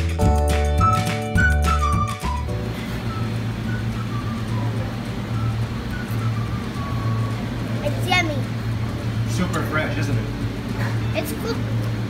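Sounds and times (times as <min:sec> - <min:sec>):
background music: 0:00.0 - 0:08.1
steady low hum: 0:02.4 - 0:12.0.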